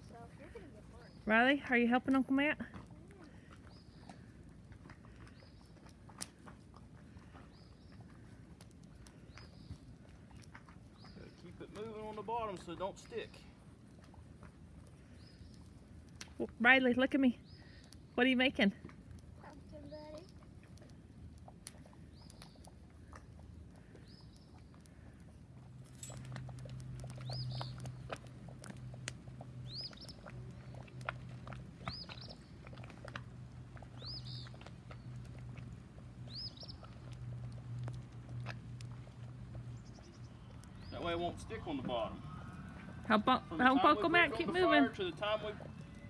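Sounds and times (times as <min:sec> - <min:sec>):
low steady hum: 0:00.0 - 0:46.0
bird chirping: 0:09.0 - 0:13.5, 0:27.0 - 0:28.8, 0:29.4 - 0:32.9, 0:33.7 - 0:35.6, 0:36.2 - 0:38.0, 0:39.2 - 0:46.0
faint clicks: 0:18.8 - 0:41.0.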